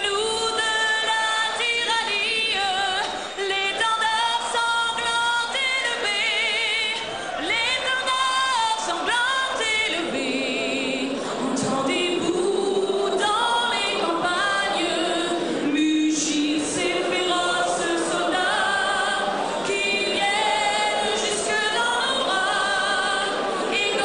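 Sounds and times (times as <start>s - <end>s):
woman singing into microphone: 0.0s - 24.0s.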